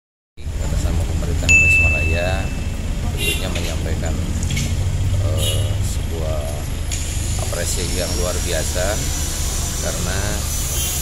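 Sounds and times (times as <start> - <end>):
low outdoor rumble: 0.4 - 8.0
high ding: 1.5 - 2.8.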